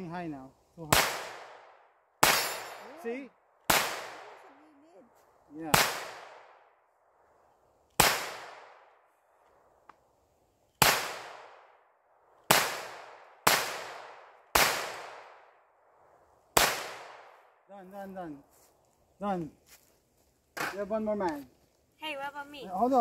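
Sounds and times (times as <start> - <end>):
pistol shots with echo: 0.9 - 3.1, 3.7 - 4.4, 5.6 - 6.7, 8.0 - 8.9, 10.8 - 11.7, 12.5 - 15.5, 16.6 - 17.4.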